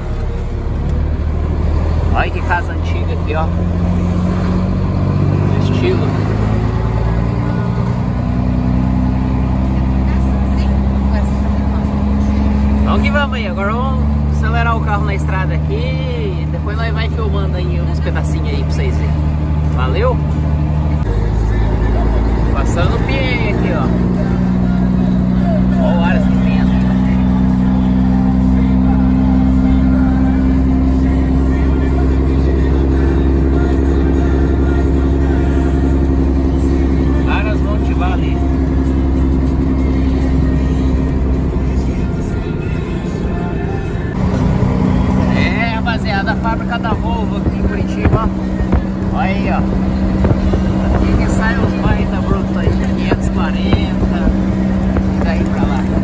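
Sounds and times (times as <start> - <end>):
diesel truck engine running: 0.0 - 56.0
indistinct voices or music: 0.0 - 56.0.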